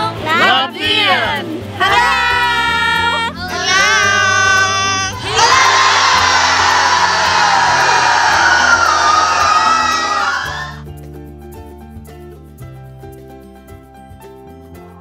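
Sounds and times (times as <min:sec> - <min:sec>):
background music: 0:00.0 - 0:15.0
crowd cheering and shouting: 0:01.8 - 0:10.8
group of voices shouting: 0:03.5 - 0:10.8.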